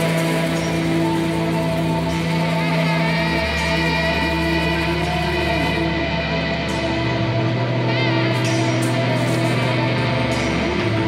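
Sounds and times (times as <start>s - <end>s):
steady bass line: 0.0s - 11.0s
sustained guitar tones: 0.0s - 11.0s.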